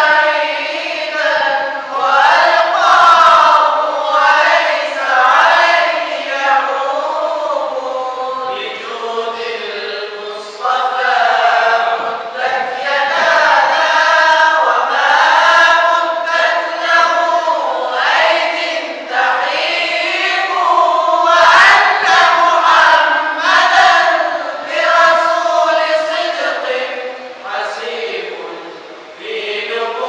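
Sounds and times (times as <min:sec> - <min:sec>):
men chanting in unison: 0:00.0 - 0:30.0.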